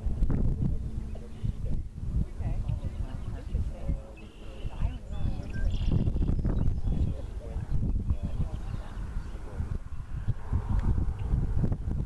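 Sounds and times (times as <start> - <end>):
quiet voices: 0.0 - 10.2
wind buffeting microphone: 0.0 - 12.0.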